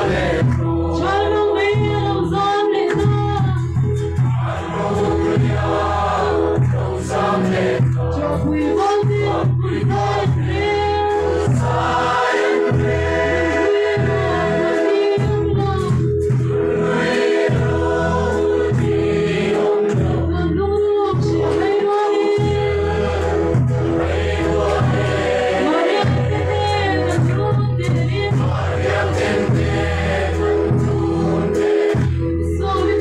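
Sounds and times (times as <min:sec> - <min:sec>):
crowd singing a hymn: 0:00.0 - 0:33.0
low bass line: 0:22.4 - 0:32.8.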